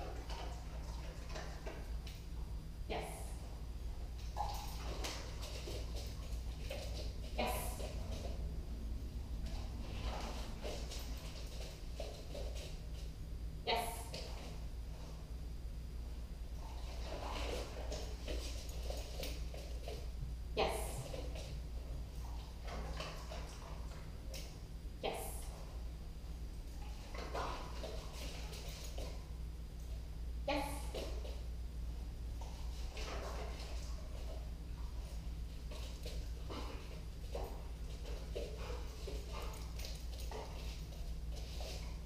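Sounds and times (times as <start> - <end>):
steady low hum: 0.0 - 42.0
dog scuffs and breaths: 9.4 - 13.2, 16.5 - 20.2, 26.6 - 30.1, 32.3 - 42.0.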